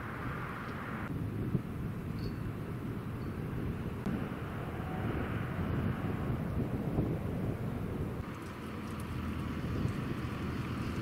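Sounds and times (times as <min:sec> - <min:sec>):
low outdoor rumble: 0:00.0 - 0:11.0
wind buffeting microphone: 0:00.0 - 0:11.0
rushing noise: 0:04.0 - 0:08.2.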